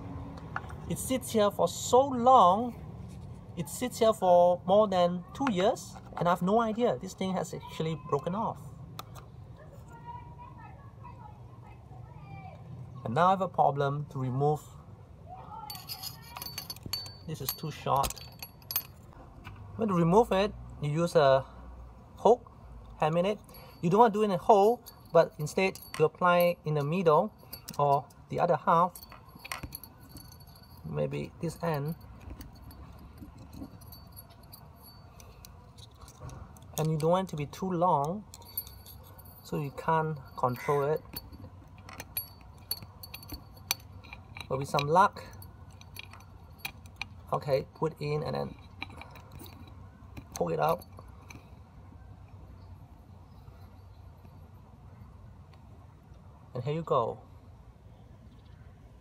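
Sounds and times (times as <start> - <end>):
wire hook tapping metal tube: 15.7 - 19.1, 23.4 - 51.4
metal pliers clicking and clinking: 15.7 - 19.2, 23.0 - 51.5.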